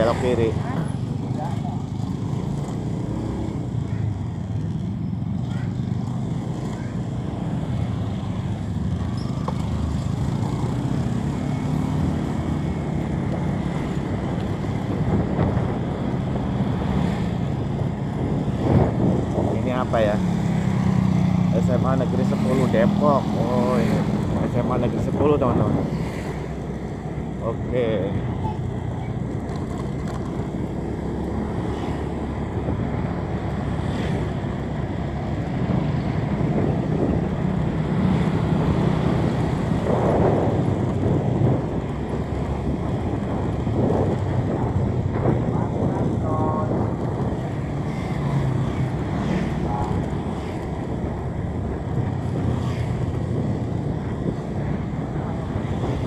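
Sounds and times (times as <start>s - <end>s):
wind rushing over microphone: 5.8s - 56.0s.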